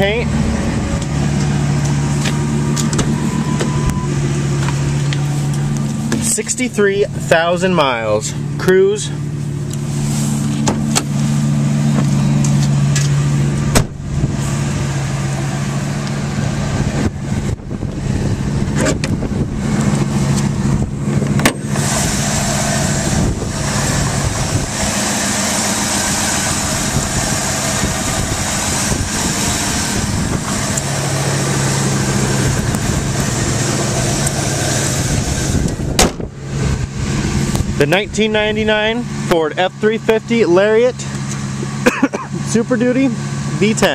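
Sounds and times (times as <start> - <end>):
engine idling: 0.0 - 43.9.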